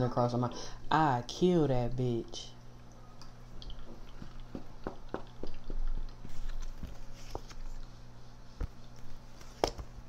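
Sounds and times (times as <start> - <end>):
steady low hum: 0.0 - 10.0
cards being shuffled: 6.2 - 7.9.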